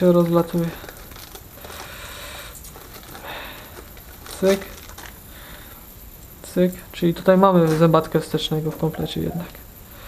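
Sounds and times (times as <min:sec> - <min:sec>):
plastic wrapping rustling: 0:00.0 - 0:05.9, 0:07.3 - 0:09.7.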